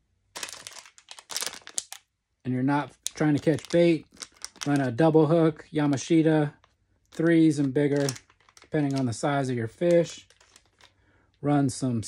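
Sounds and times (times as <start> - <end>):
plastic packet crinkling: 0.3 - 2.1, 2.8 - 5.1, 6.0 - 11.4.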